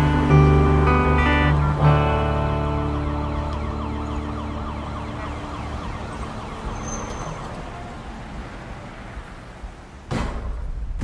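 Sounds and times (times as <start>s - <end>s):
siren warbling fast: 2.3s - 7.5s.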